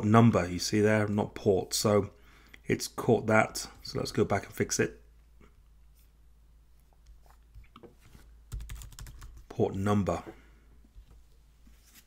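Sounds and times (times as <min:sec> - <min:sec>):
computer keyboard typing: 0:08.5 - 0:09.5.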